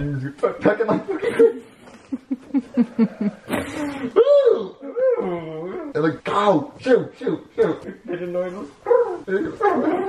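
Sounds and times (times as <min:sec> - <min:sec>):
men laughing: 0:00.4 - 0:04.2.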